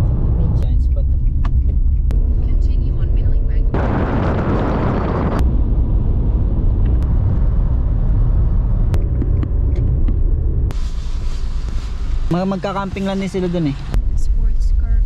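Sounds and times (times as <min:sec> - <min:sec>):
car road and engine rumble: 0:00.0 - 0:15.0
wind noise rushing: 0:01.8 - 0:12.3.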